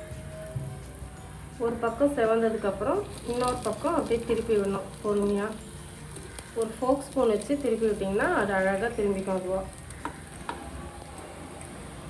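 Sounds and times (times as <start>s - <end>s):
batter sizzling in a pan: 0.0s - 12.0s.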